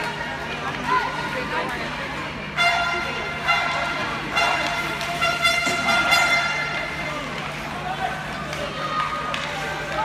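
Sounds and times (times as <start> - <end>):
murmur of voices: 0.0 - 10.0
horn with steady pitch: 2.5 - 7.0.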